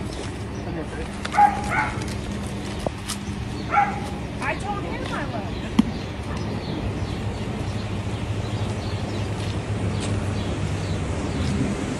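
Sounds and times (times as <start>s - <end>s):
low hum of street noise: 0.0s - 11.9s
dog yipping barks: 1.3s - 2.0s, 3.7s - 4.1s.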